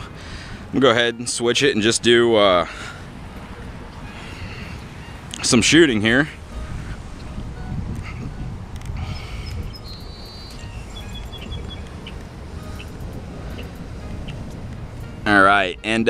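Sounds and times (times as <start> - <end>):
low outdoor rumble: 0.0 - 16.0
faint high bird chirps: 9.1 - 14.4.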